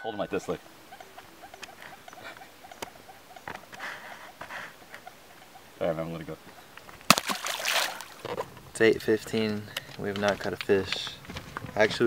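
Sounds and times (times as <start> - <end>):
animal chirping: 0.0 - 6.8.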